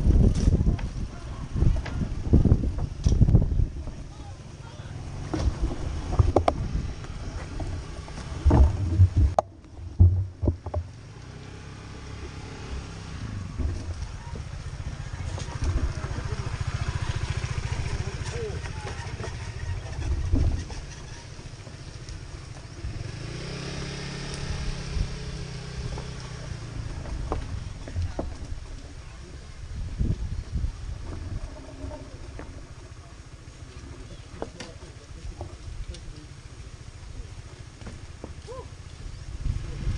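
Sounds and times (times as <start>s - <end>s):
small motorbike engines running: 0.0s - 39.9s
loud knocks and clatters: 7.5s - 10.9s.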